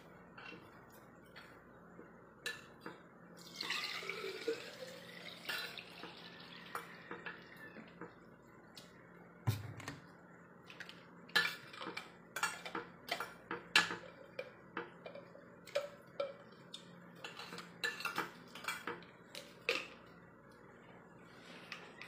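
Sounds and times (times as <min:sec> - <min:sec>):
cutlery clinking on plates: 0:11.3 - 0:16.5, 0:17.2 - 0:20.0.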